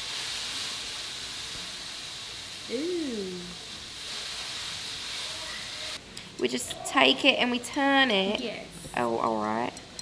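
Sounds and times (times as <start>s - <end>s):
steady hiss: 0.0s - 6.4s
woman saying ooh: 2.7s - 3.6s.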